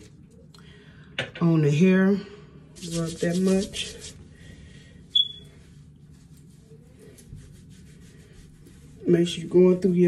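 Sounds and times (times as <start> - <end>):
hands rubbing through hair: 2.8 - 4.2, 5.6 - 10.0.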